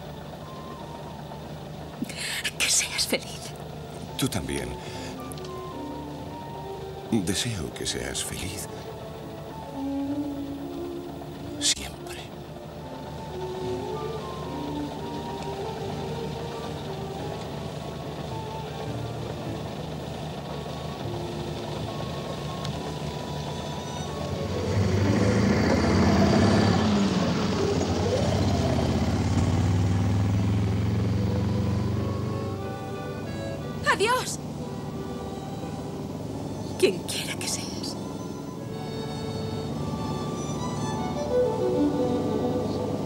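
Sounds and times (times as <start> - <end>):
car engine pulling away: 0.0 - 43.0
soft film score: 0.0 - 43.0.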